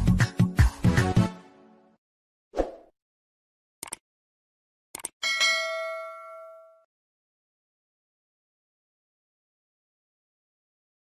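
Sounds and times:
short clicks: 3.8 - 4.0, 4.9 - 5.2
struck bell note ringing: 5.2 - 6.9.

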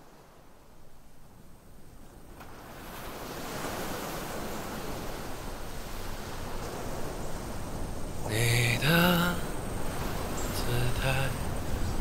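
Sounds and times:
hiss-like ambient noise: 0.0 - 12.0.

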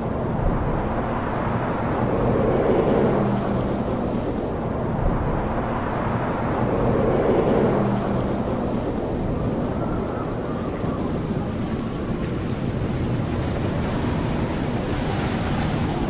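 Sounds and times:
thunder-like rumbling: 0.0 - 16.0.

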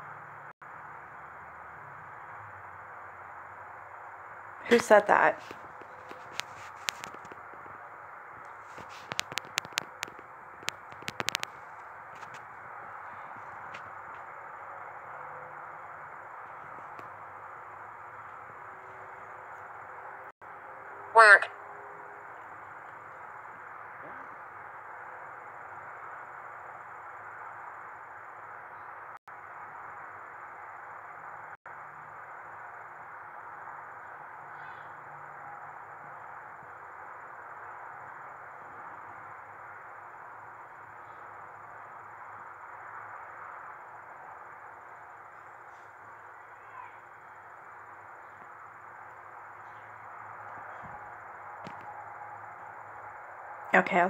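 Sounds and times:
faint high whine: 0.0 - 54.0
static hiss: 0.0 - 54.0.

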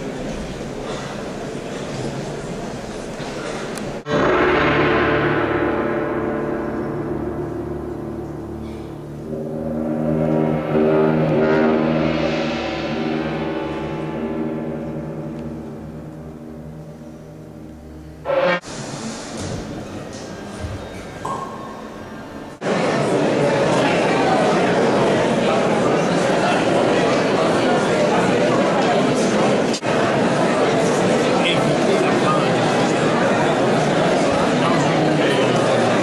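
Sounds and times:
orchestra playing sustained chord: 4.0 - 18.9.

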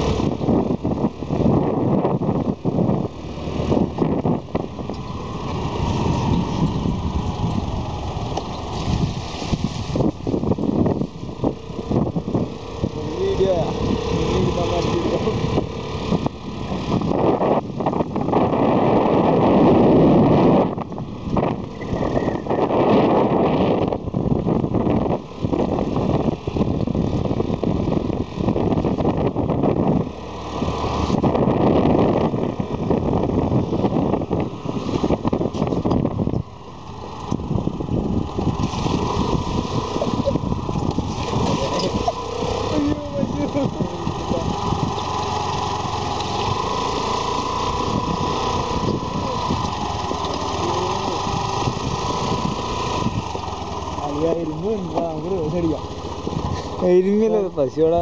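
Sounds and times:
small motorbike engine running: 0.0 - 58.0
wind buffeting microphone: 0.0 - 58.0.

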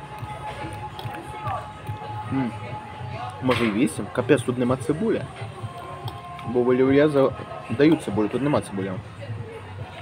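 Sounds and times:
faint voices of diners: 0.0 - 10.0
music playing: 0.0 - 10.0.

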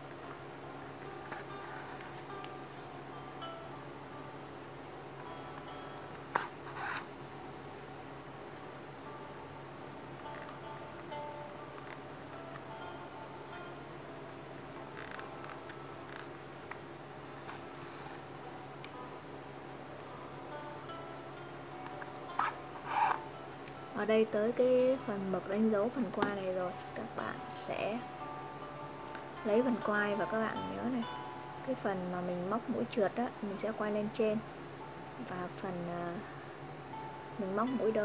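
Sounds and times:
soft background music: 0.0 - 38.0.

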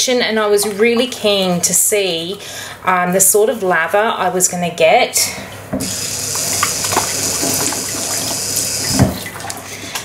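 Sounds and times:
tap turned on: 5.8 - 7.8
water running into steel sink: 5.8 - 9.6.

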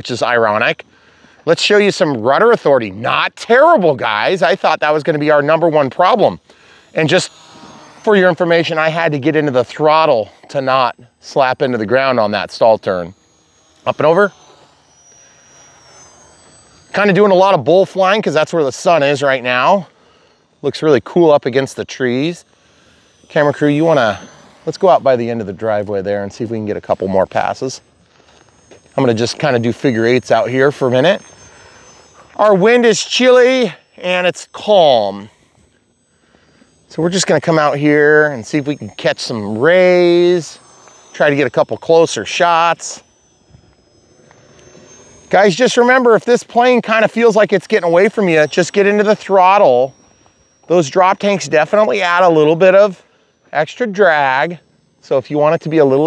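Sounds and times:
model plane motor whining: 0.0 - 56.0.

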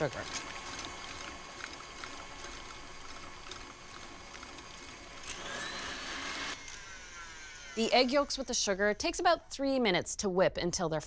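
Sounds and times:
stand mixer motor whining: 0.0 - 8.7.

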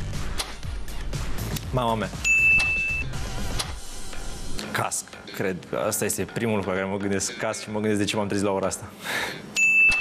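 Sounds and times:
background music: 0.0 - 9.4
high electronic beep: 2.2 - 3.2, 9.6 - 10.0.

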